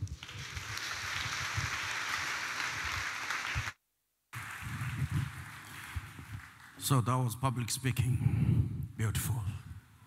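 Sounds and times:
audience applauding: 0.0 - 3.8, 4.4 - 7.1.

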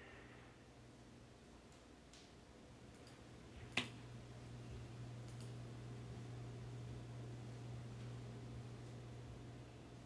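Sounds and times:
faint low hum: 0.0 - 10.0
computer mouse click: 5.2 - 5.6.

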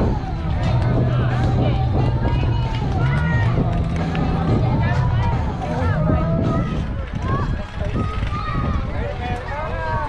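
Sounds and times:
players and spectators calling out: 0.0 - 10.0.

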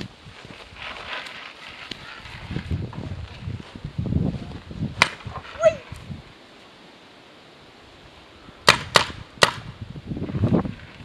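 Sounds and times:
paintball marker shots: 8.6 - 9.7.

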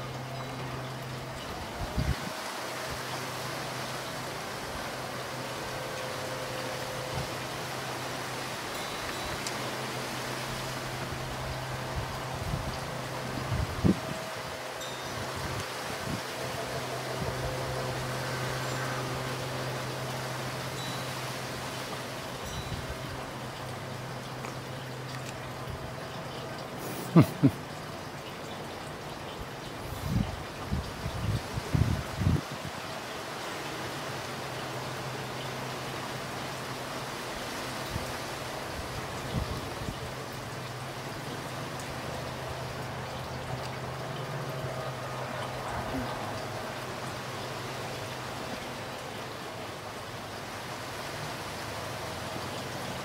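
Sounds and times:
outdoor background noise: 0.0 - 53.0.

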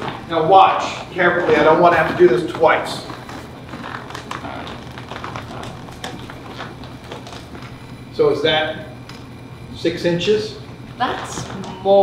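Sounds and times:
low room hum: 0.0 - 12.0
shoes tapping on stage floor: 1.4 - 7.8.

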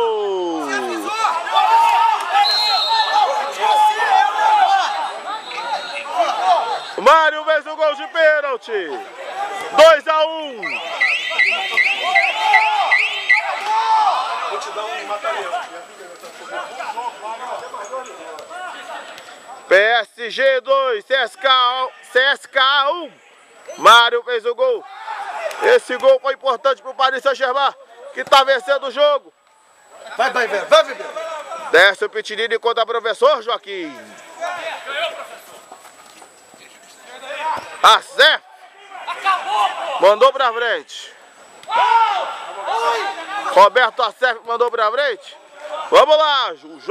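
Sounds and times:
man shouting loudly: 0.0 - 5.1
people chattering and calling: 0.0 - 46.9.

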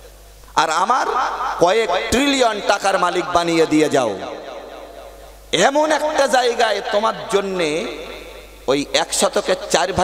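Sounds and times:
man preaching into a microphone: 0.4 - 10.0.

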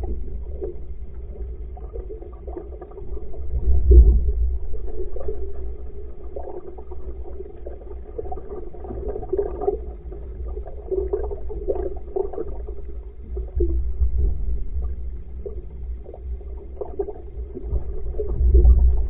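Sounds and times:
water rumble: 0.0 - 19.0.

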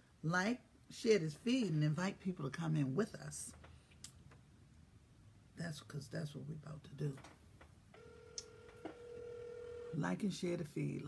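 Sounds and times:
phone ringback tone: 8.0 - 10.0.

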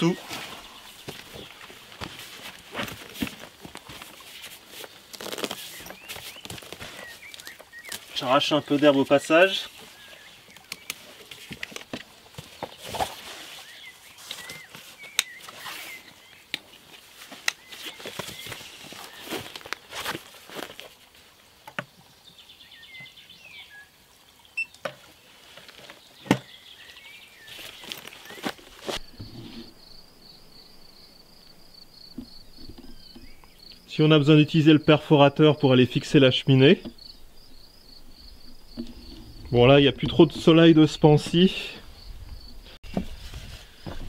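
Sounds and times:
crickets chirping: 27.6 - 44.0.

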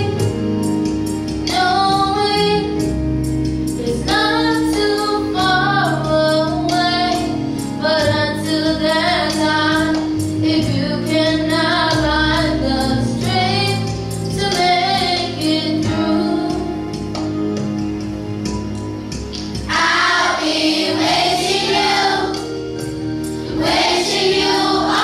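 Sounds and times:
instrumental accompaniment with beat: 0.0 - 25.0
girl singing into a microphone: 3.8 - 16.8.

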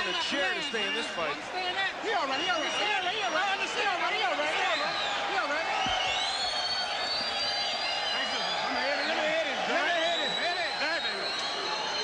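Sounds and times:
crowd noise in arena: 0.0 - 12.0.

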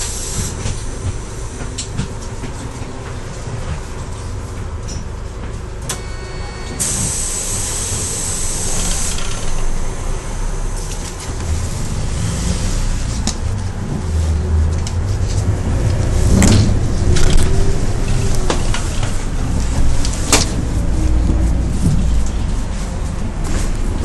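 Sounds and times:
bus engine rumbling: 0.0 - 24.0
short electronic beep: 6.0 - 6.8
compressed air hiss: 6.8 - 9.5.

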